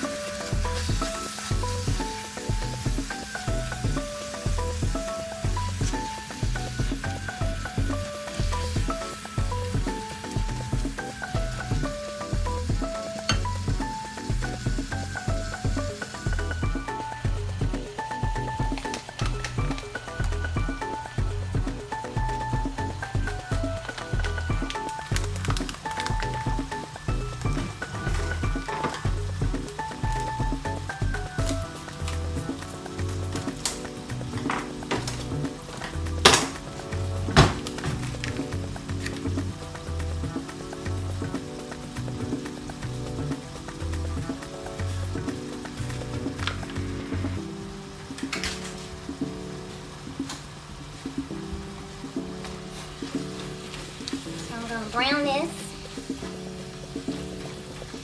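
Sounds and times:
background music: 0.0 - 58.0
meat sizzling in a skillet: 0.0 - 58.0.

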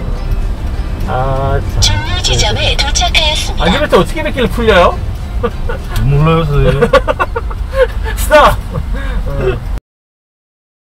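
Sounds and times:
engine and road rumble: 0.0 - 9.8
people laughing: 6.6 - 7.9.

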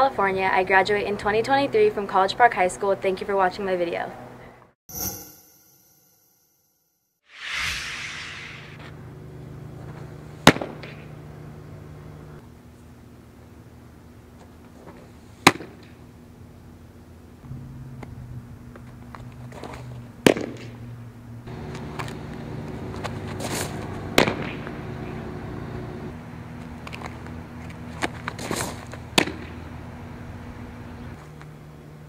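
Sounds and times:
low background hum: 8.9 - 32.0.

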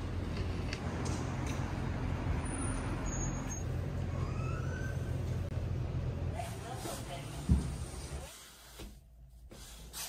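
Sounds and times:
distant city traffic rumble: 0.0 - 8.3.

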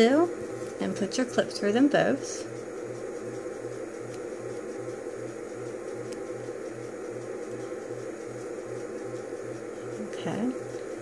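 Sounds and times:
pulsing low hum: 0.0 - 11.0.

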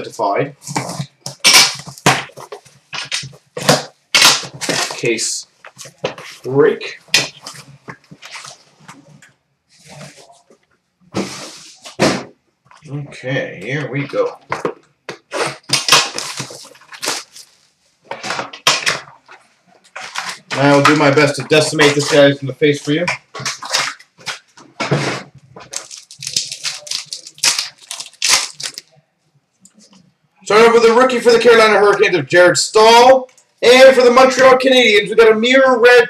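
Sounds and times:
plastic shrink wrap tearing: 15.3 - 17.6, 23.4 - 24.5, 25.6 - 28.9.

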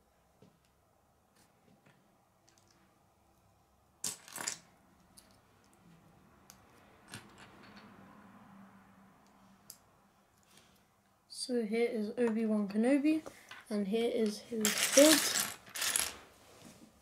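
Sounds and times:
lego pieces clattering: 14.5 - 16.2
plastic lego pieces clicking: 14.7 - 16.1.

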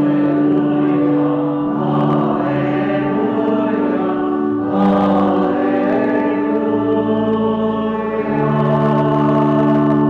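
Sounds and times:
choir singing: 0.0 - 10.0
organ chords: 0.0 - 10.0.

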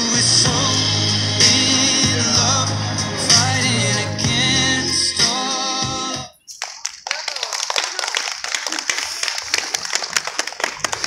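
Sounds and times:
voices: 0.0 - 9.5
audience applauding: 6.5 - 11.0.

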